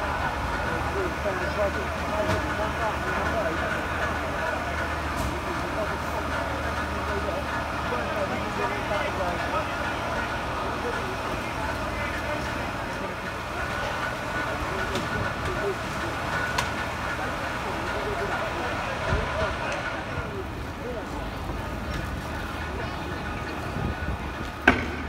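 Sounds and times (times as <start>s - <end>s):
diesel engines humming: 0.0s - 25.0s
indistinct voices: 0.0s - 25.0s.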